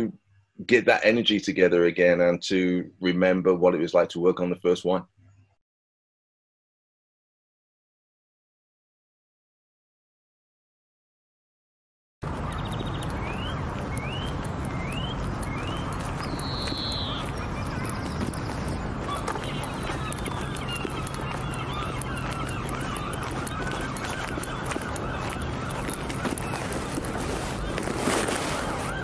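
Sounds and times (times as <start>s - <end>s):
birds chirping: 12.2s - 29.0s.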